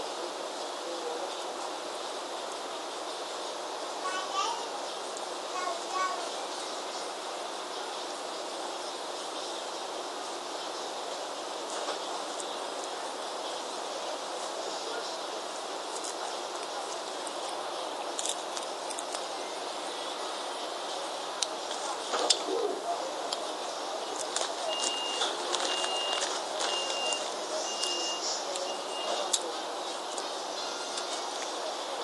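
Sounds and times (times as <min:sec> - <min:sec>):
steady background hiss: 0:00.0 - 0:32.0
short high beeps: 0:24.7 - 0:29.3.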